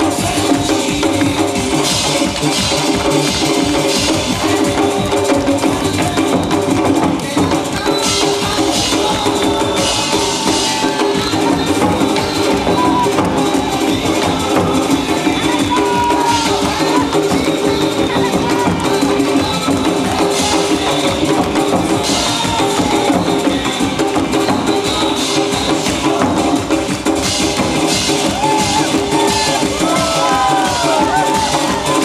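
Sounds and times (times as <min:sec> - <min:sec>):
loud backing music: 0:00.0 - 0:32.0.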